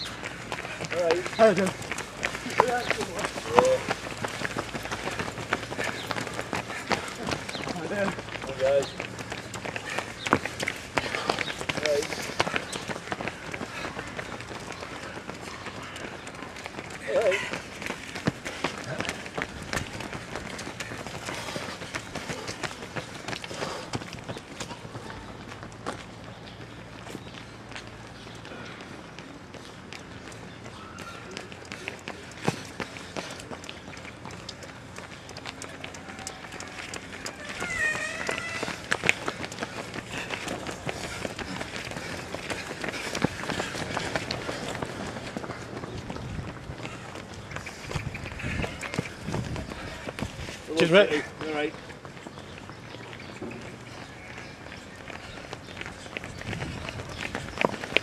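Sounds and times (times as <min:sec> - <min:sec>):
runners' footsteps on pavement: 0:00.0 - 0:58.0.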